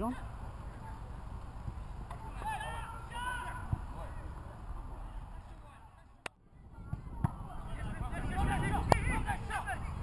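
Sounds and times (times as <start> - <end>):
man shouting: 2.4 - 3.7.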